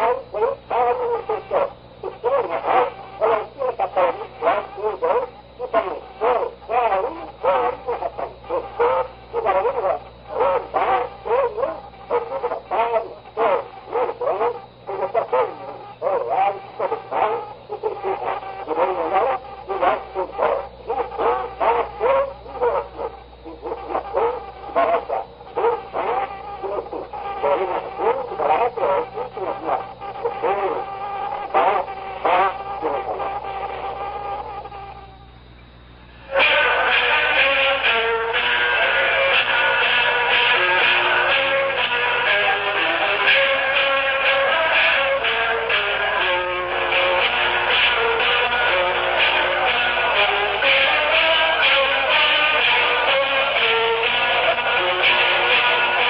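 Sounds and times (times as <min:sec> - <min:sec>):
man speaking on old tape: 0:00.0 - 0:34.6
steady low hum: 0:00.0 - 0:56.0.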